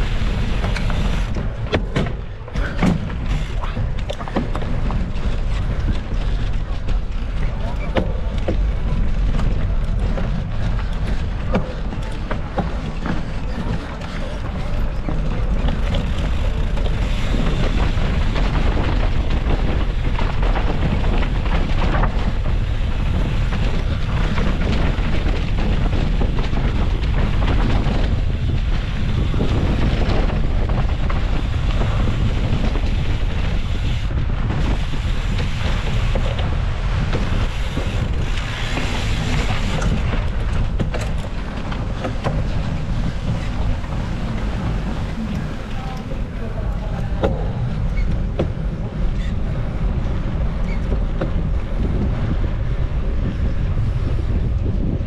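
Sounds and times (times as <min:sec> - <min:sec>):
bike rattling knocks: 0:00.0 - 0:54.9
bike tyres on dirt and stone: 0:00.0 - 0:55.0
wind rushing over microphone: 0:00.0 - 0:55.0.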